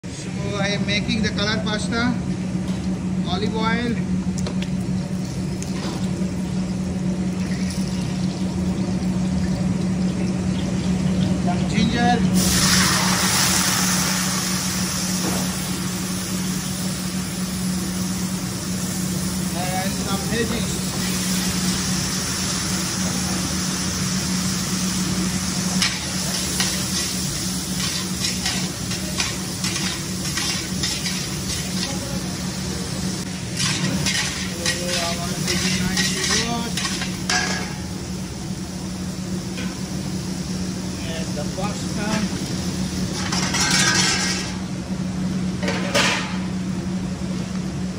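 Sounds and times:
kitchen equipment humming: 0.0 - 47.9
vegetables sizzling in a wok: 5.4 - 46.6.

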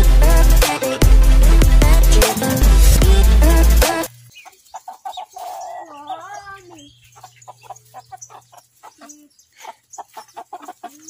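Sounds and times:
chickens clucking: 3.9 - 11.0.

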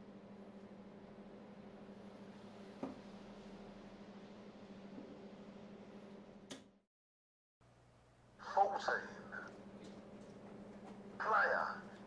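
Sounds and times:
steady low hum: 0.0 - 6.7, 7.6 - 12.0.

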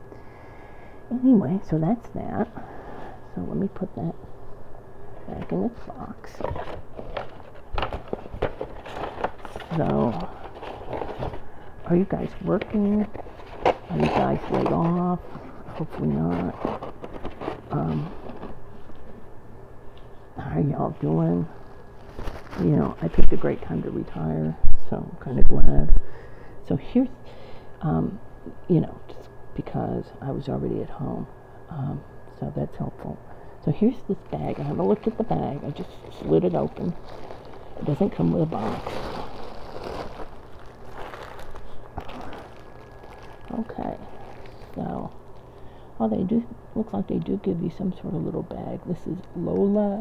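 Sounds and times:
steady low hum: 0.0 - 50.0
plastic mailer bag crinkling: 5.5 - 18.6, 21.5 - 23.8, 34.1 - 45.5.

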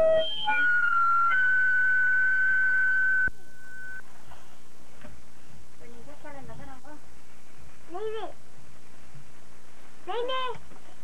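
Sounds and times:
high electronic tone: 0.0 - 4.0.

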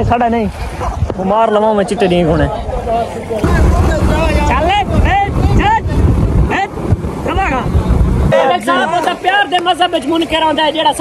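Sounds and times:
wind buffeting microphone: 0.0 - 8.5.

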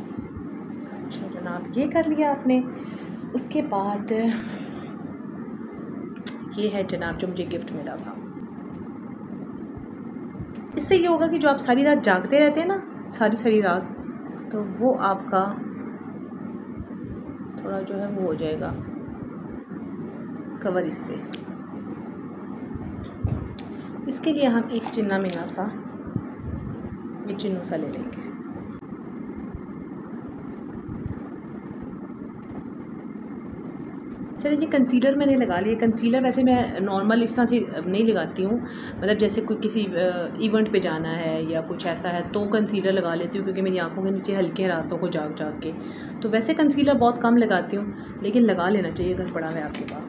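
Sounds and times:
low rumble of background noise: 0.0 - 50.0.

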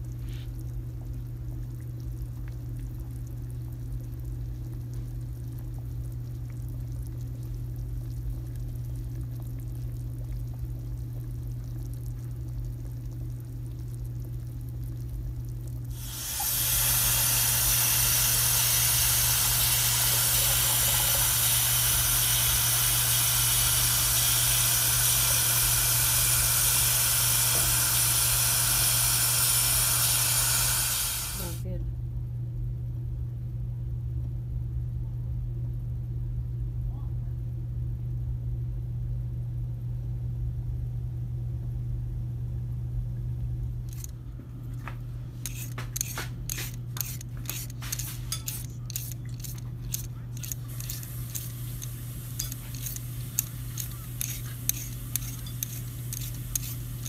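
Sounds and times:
steady low hum: 0.0 - 57.0
tap water running into bowl: 15.9 - 31.6, 44.8 - 57.0.

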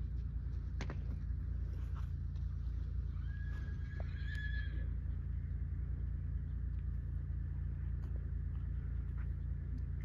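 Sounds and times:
low rumble: 0.0 - 10.0
horse whinnying: 3.2 - 4.9.

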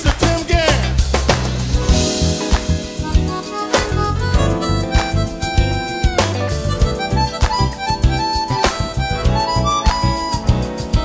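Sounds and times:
smooth jazz band playing: 0.0 - 11.0.

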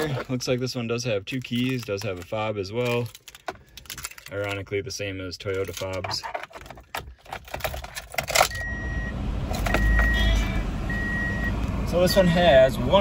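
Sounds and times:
car engine starting and idling: 7.0 - 13.0
dashboard chime beeping: 8.5 - 12.2.

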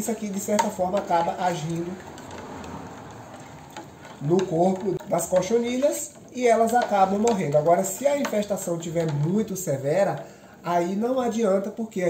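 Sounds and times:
spoon scraping saucepan: 0.0 - 10.7
spoon ticking against pot: 0.0 - 10.7
soft steady hiss: 0.0 - 12.0.

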